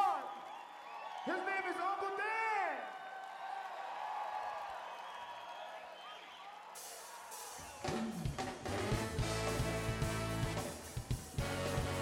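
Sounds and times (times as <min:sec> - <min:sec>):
faint crowd noise: 0:05.8 - 0:12.0
funk-jazz band with drums and horns: 0:06.8 - 0:12.0.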